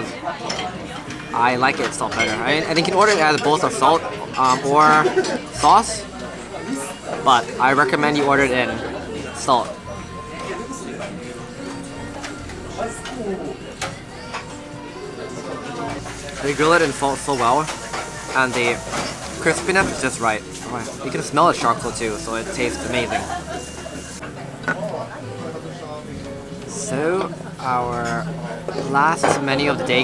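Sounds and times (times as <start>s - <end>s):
background music: 0.0s - 30.0s
indistinct voices of diners: 0.0s - 30.0s.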